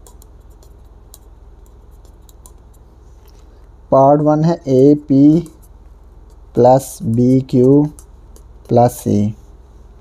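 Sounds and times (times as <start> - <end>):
marker pen scratching on paper: 0.0 - 3.4, 4.2 - 9.6
low steady hum: 0.0 - 10.0.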